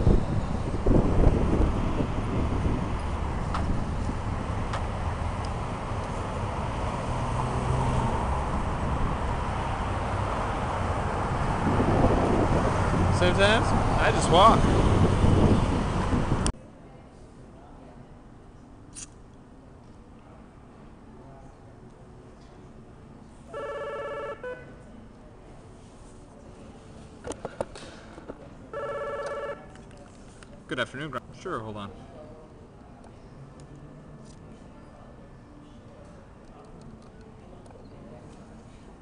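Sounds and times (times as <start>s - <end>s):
wind on microphone: 0.0s - 5.0s, 10.6s - 16.5s
road traffic: 0.0s - 16.6s, 17.3s - 39.0s.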